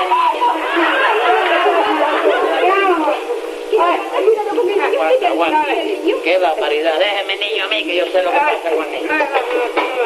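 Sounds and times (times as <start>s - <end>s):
voices talking and crying out: 0.0s - 6.5s.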